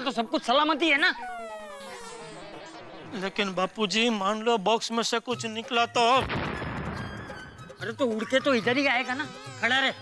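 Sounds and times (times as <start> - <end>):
buzzy electronic tone sliding down: 1.0 - 3.4.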